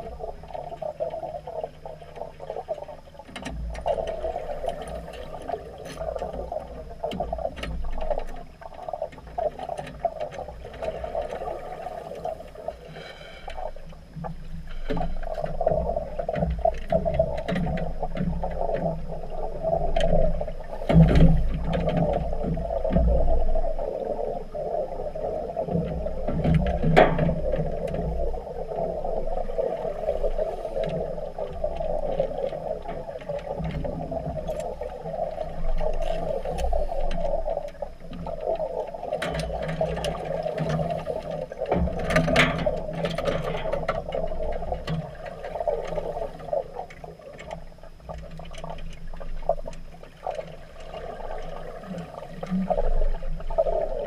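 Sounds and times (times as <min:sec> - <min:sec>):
scuba exhaust bubbles underwater: 0:00.0 - 0:54.0
sharp knocks underwater: 0:14.2 - 0:23.8, 0:25.6 - 0:28.6, 0:29.2 - 0:54.0.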